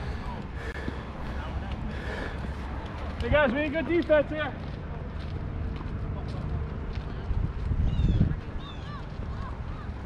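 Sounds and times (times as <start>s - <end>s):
faint distant voices: 0.0s - 10.0s
low wind rumble: 0.0s - 10.0s.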